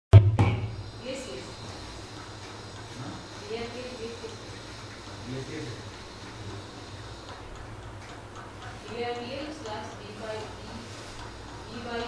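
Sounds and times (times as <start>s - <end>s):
steady low hum: 0.1s - 12.0s.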